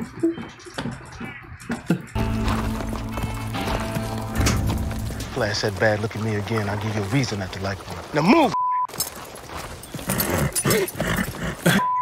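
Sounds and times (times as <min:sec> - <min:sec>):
censor bleep: 0:08.5 - 0:08.9, 0:11.8 - 0:12.0.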